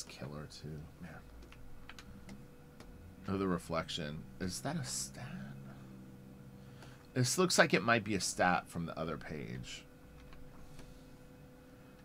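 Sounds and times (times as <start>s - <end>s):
faint steady hum: 0.0s - 12.0s
computer controls clicking: 1.2s - 2.9s.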